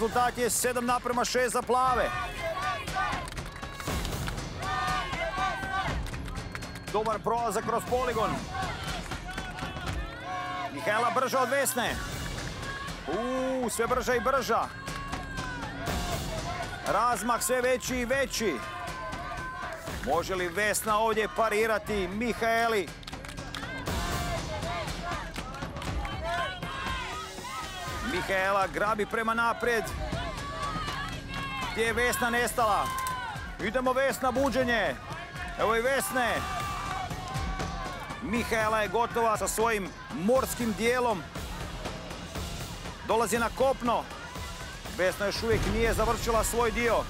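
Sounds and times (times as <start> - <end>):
background music: 0.0 - 47.0
people shouting and cheering: 0.0 - 47.0.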